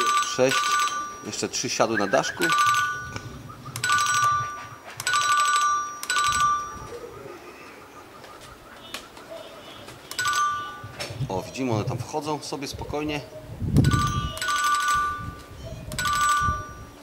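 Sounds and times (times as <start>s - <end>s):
electronic clock ringing trill: 0.0s - 1.6s, 2.4s - 3.2s, 3.8s - 6.9s, 10.1s - 11.0s, 13.8s - 15.4s, 16.0s - 17.0s.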